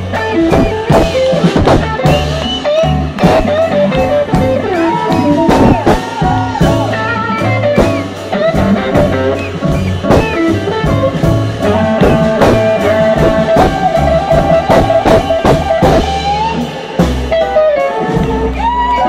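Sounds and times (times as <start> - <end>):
blues band playing: 0.0 - 19.0
electric guitar bending notes: 0.0 - 19.0.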